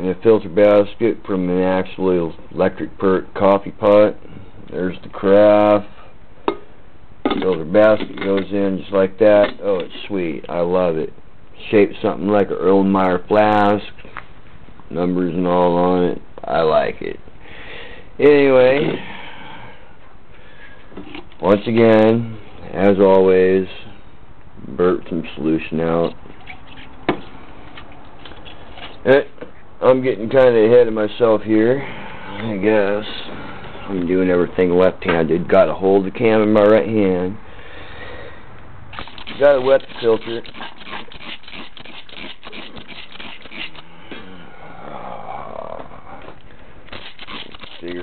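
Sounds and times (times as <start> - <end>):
steady low hiss: 0.0 - 48.0.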